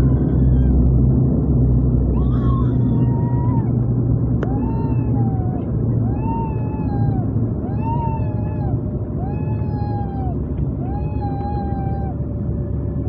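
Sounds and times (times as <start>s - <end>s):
propeller engines rumbling: 0.0s - 13.0s
rising and falling wailing tone: 2.0s - 13.0s.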